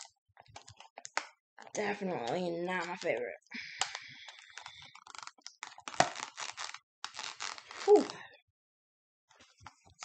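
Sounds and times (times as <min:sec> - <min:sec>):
plastic packaging crinkling: 0:03.8 - 0:08.2.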